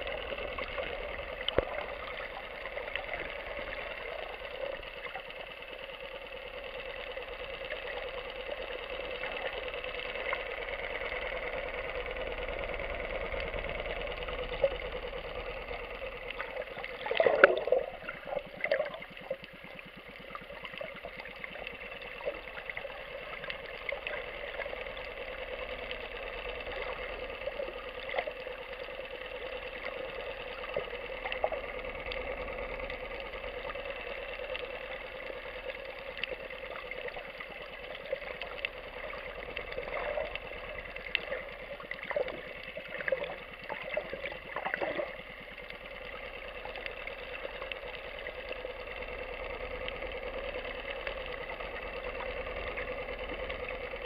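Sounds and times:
boat engine droning underwater: 0.0 - 54.0.

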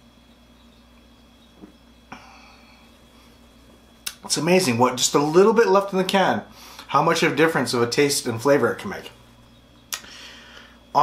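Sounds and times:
low room hum: 0.0 - 11.0
breathy exhale: 2.1 - 2.9, 10.0 - 10.9.

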